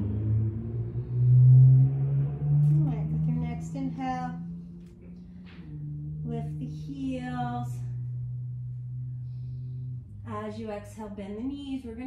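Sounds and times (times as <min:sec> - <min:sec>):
low sustained drone note: 0:00.0 - 0:12.0.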